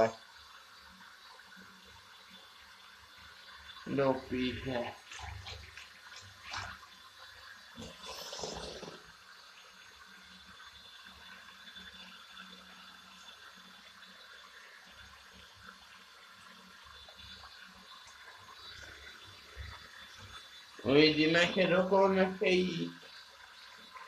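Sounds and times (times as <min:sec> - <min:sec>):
liquid in a bathtub: 0:00.0 - 0:24.0.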